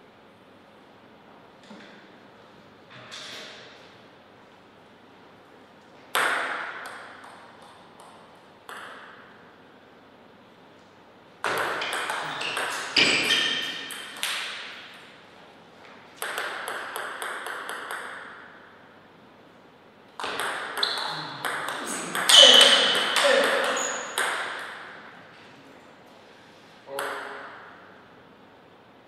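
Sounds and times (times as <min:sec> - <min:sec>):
table tennis ball clicking: 0:16.2 - 0:18.4.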